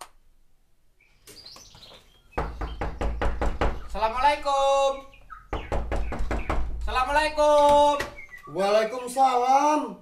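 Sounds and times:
faint bird chirping: 0.9 - 9.6
knocking on wooden door: 2.4 - 4.0, 5.5 - 8.2.

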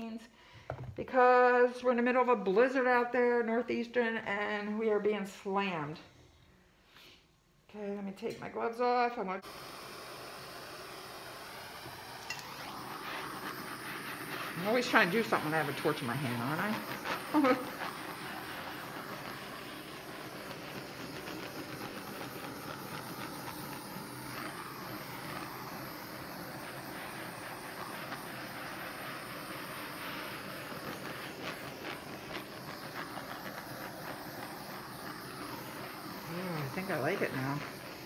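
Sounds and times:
gas torch hissing: 8.3 - 38.0.

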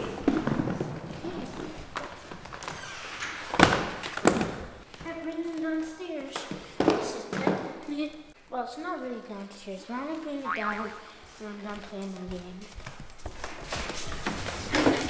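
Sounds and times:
roller skates thudding on wood floor: 0.0 - 5.2.

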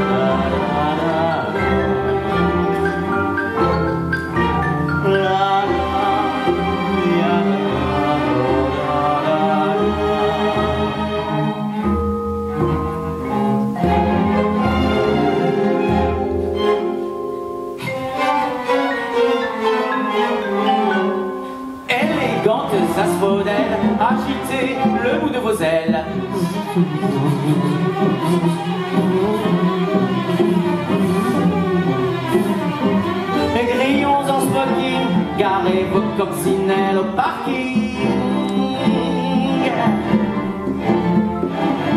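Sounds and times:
string orchestra playing: 0.0 - 41.9.

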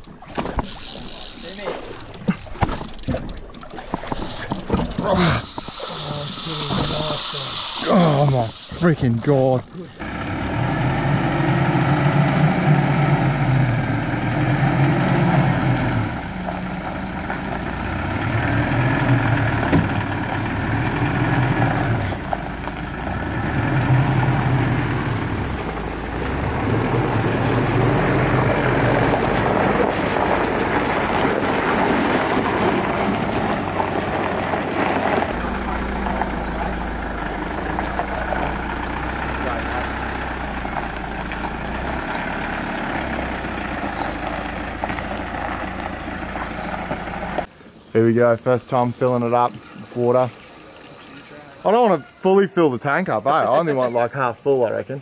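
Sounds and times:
indistinct voices: 4.3 - 29.8, 35.2 - 43.9
vehicle engine humming: 4.4 - 47.6.

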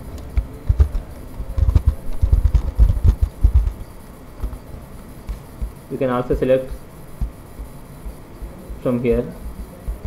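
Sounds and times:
computer keyboard typing: 0.0 - 5.8.

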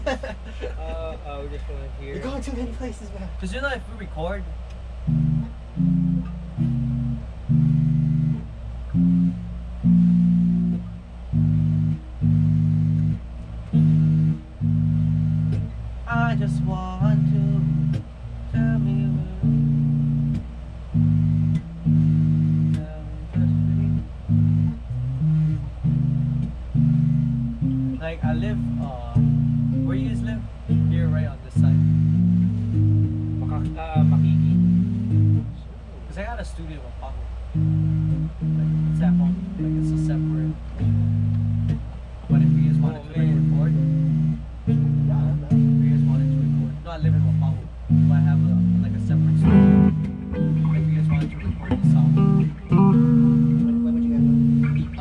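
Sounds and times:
low amplifier hum: 0.0 - 55.0
electric bass and guitar jamming: 3.6 - 55.0.

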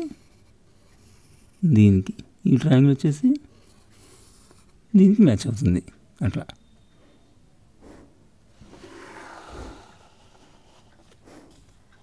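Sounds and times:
pencil scratching on paper: 0.0 - 1.6, 3.6 - 4.8, 8.6 - 12.0.

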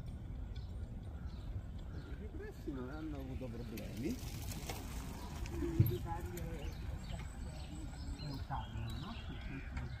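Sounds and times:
bicycle tyres rattling over cobblestones: 0.0 - 10.0.

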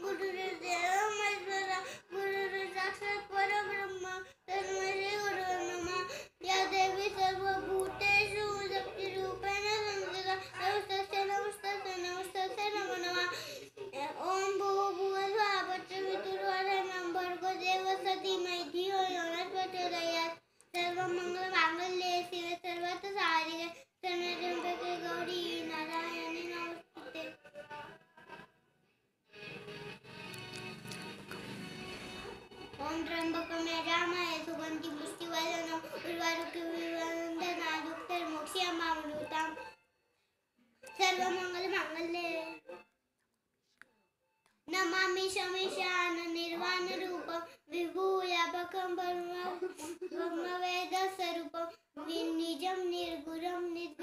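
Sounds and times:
boy chanting melodically: 0.0 - 13.3
boy chanting: 0.0 - 27.3, 32.8 - 39.5, 44.7 - 54.0.

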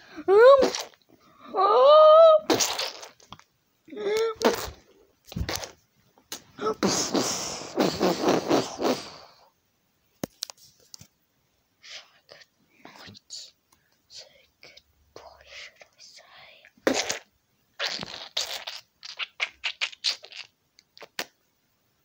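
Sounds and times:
person whispering: 11.8 - 16.8.

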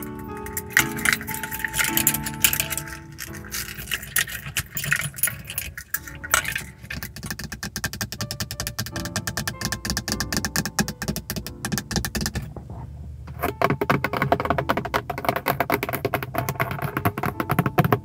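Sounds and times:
pendant and bottle jingling: 0.0 - 7.4
soft music with held tones: 0.0 - 18.0
fingernails tapping plastic: 6.0 - 12.6, 13.3 - 18.0.

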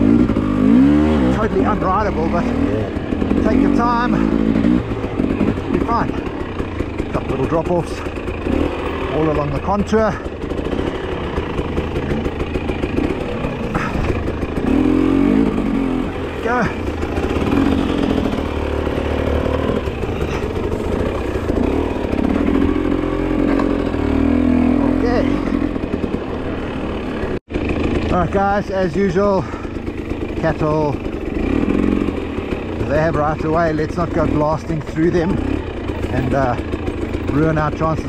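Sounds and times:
dirt bike engine revving: 0.0 - 38.0.

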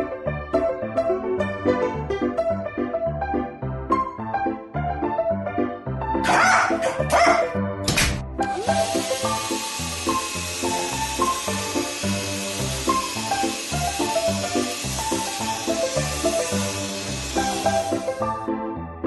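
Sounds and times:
dog barking: 6.2 - 7.6.

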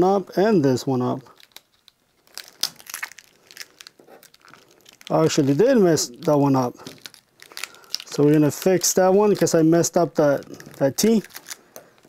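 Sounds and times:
vinyl crackling as peeled: 0.9 - 12.0.

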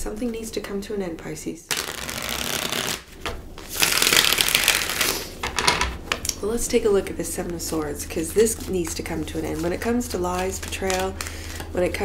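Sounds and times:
cards riffle-shuffled: 1.7 - 5.4.

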